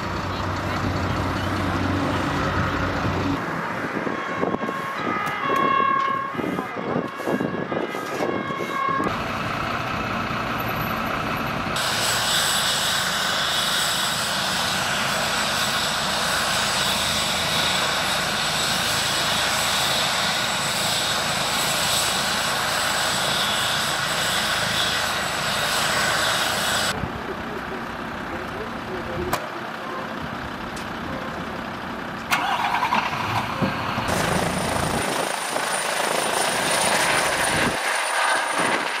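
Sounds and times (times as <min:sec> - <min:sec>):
vehicle engines running: 0:00.0 - 0:39.0.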